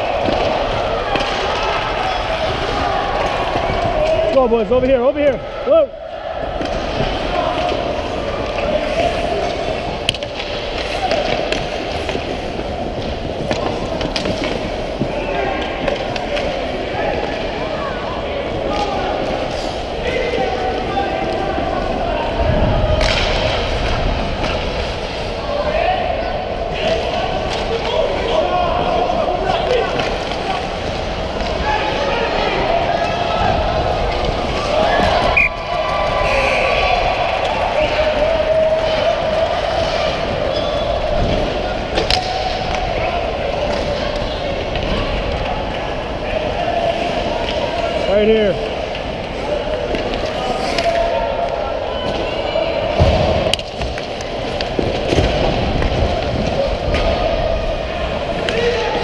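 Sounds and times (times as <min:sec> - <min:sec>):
sticks and puck clacking: 0:00.0 - 0:05.8, 0:06.4 - 0:22.0, 0:22.8 - 0:59.0
skates scraping on ice: 0:06.5 - 0:17.7, 0:26.7 - 0:52.2.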